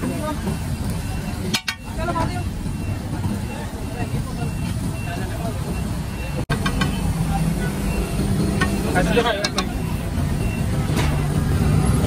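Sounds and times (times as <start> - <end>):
babble of many voices: 0.0 - 12.0
passing traffic rumble: 0.0 - 12.0.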